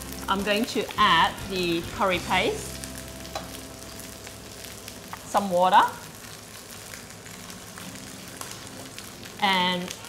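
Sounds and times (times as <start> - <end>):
paste sizzling in hot oil: 0.0 - 10.0.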